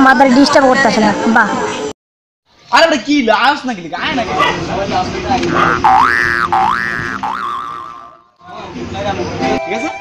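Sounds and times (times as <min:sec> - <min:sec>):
cartoon boing sound effect: 0:05.6 - 0:08.3.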